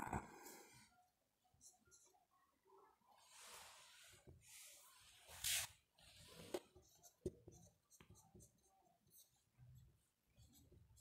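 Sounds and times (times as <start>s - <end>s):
marker writing on whiteboard: 4.4s - 11.0s.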